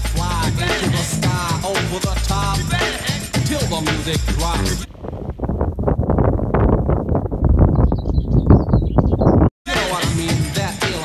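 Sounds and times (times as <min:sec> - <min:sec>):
wind buffeting microphone: 0:04.8 - 0:09.5.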